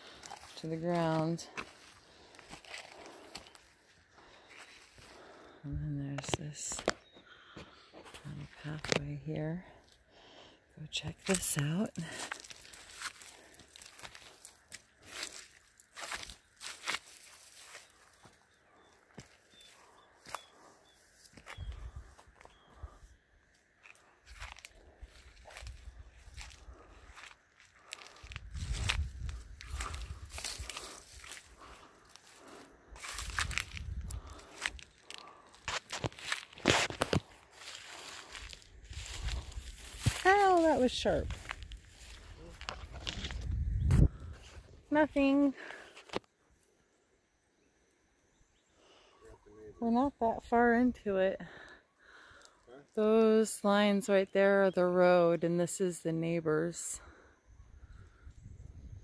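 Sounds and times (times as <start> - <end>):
footsteps through dry grass: 0.0 - 10.1, 10.9 - 46.2.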